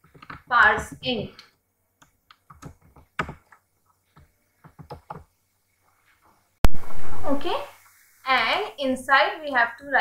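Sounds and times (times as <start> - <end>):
computer keyboard keystrokes: 2.4 - 3.6.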